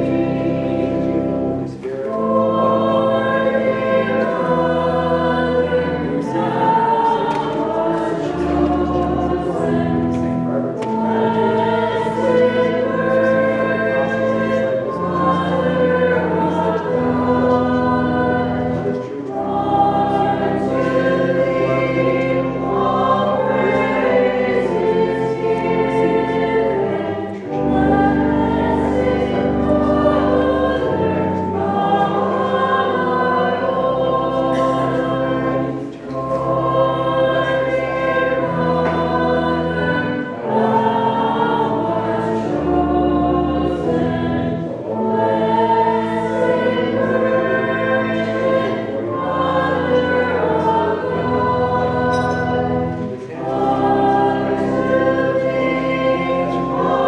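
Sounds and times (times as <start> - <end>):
choir singing a slow hymn: 0.0 - 57.0.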